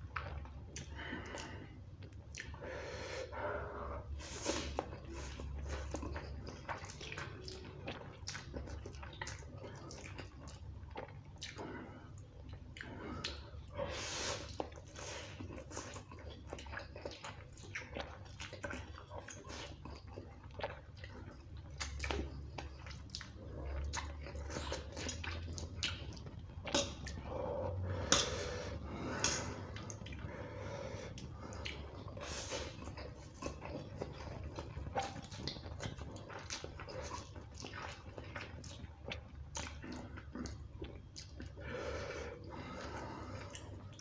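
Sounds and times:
noodles being slurped and chewed: 0:04.0 - 0:44.0
slurping noodles: 0:13.8 - 0:16.0
sharp mouth clicks: 0:28.0 - 0:28.5.

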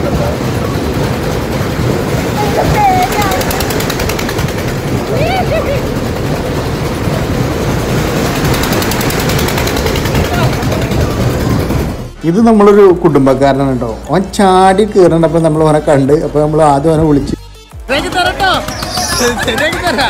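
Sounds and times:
wind buffeting microphone: 0:00.0 - 0:12.1
rattling rush of fairground ride: 0:00.0 - 0:17.1, 0:17.9 - 0:20.0.

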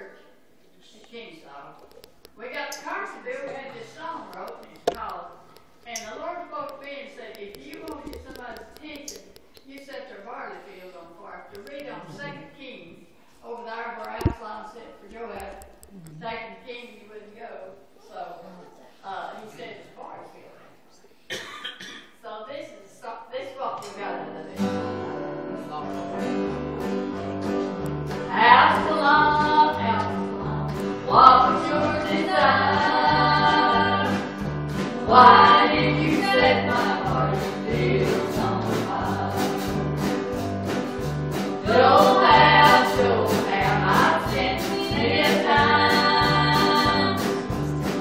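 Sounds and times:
person coughing: 0:21.3 - 0:22.2
gospel singing: 0:28.3 - 0:40.4, 0:41.4 - 0:48.0.

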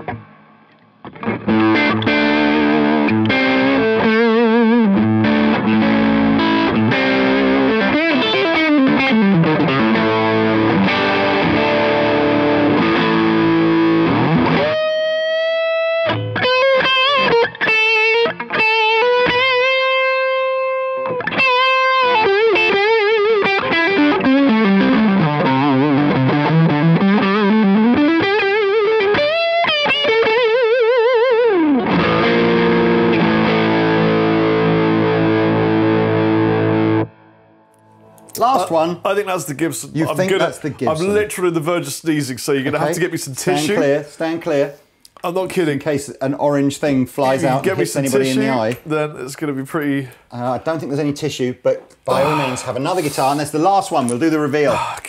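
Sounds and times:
overdriven electric guitar: 0:00.0 - 0:38.4.

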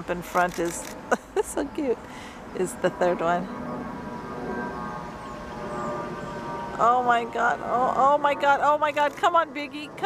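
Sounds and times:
steady hum of held tones: 0:00.0 - 0:10.0.

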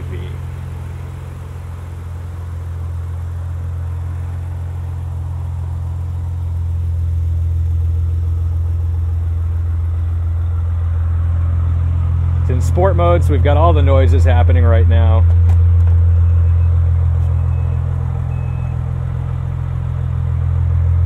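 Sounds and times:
car engine idling: 0:00.0 - 0:21.0.

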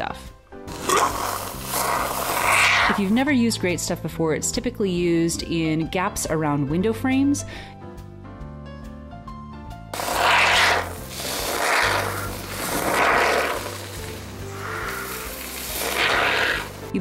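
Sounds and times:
background music: 0:00.0 - 0:17.0
aerosol foam can hissing: 0:00.7 - 0:03.1, 0:10.0 - 0:16.9.

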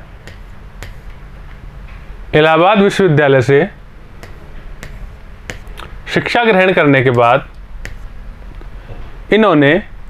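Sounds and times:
steady low hum: 0:00.0 - 0:10.0
speech: 0:02.4 - 0:03.8, 0:06.1 - 0:07.5, 0:09.3 - 0:09.9.

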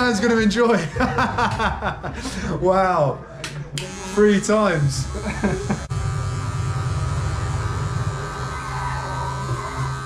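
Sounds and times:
electric hair clippers buzzing: 0:03.8 - 0:10.0.

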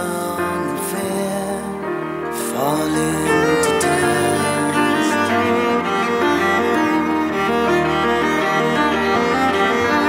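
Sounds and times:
bowed viola melody: 0:00.0 - 0:10.0
piano and keyboard accompaniment: 0:00.0 - 0:10.0.

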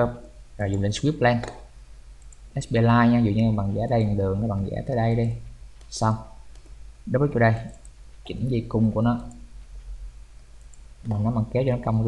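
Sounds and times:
low steady hum: 0:00.0 - 0:12.0
computer mouse clicks: 0:02.2 - 0:02.5, 0:06.5 - 0:06.8, 0:07.6 - 0:08.4, 0:10.6 - 0:10.9.

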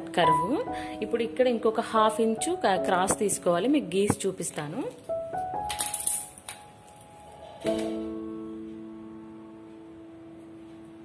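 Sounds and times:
instrumental music with held notes: 0:05.0 - 0:11.0.

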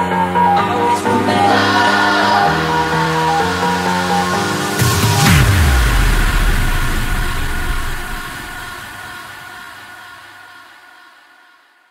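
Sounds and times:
sustained synth chord: 0:02.7 - 0:09.0
bass tail: 0:03.2 - 0:09.0.

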